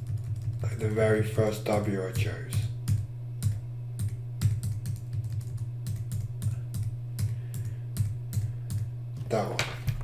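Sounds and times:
keyboard keys clicking: 0:00.0 - 0:00.6, 0:02.9 - 0:08.8
steady low hum: 0:00.0 - 0:10.0.

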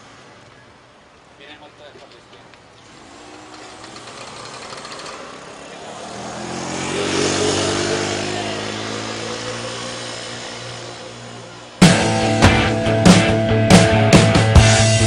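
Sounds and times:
quad bike engine driving past: 0:02.7 - 0:12.4
loud rock music: 0:07.6 - 0:15.0.

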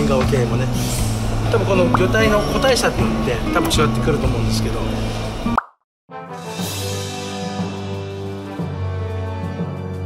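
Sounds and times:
background music: 0:00.0 - 0:10.0
rising pop sound effect: 0:05.5 - 0:05.8.

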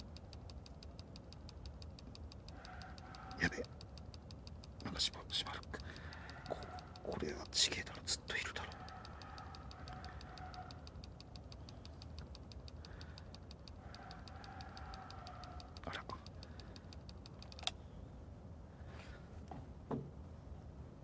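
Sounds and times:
faint rapid ticking: 0:00.0 - 0:17.7
soft clicks: 0:00.0 - 0:17.8
faint humming tones: 0:00.0 - 0:21.0.

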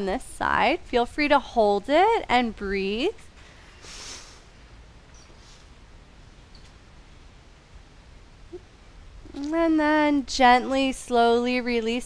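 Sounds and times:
faint hiss: 0:03.2 - 0:11.6.

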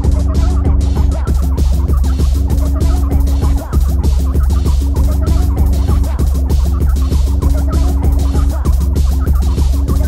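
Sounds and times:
tekno music with heavy bass: 0:00.0 - 0:10.0.

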